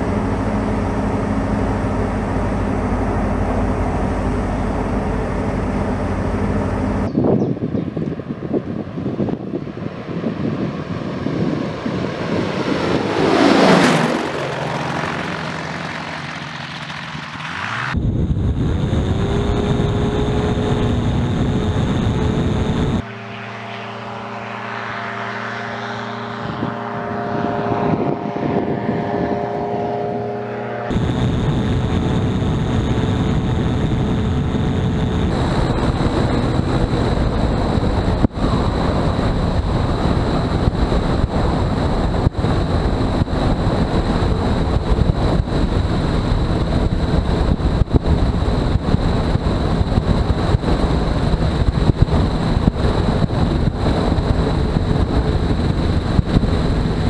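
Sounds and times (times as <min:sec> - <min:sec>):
microlight engine and propeller: 0:00.0 - 0:57.0.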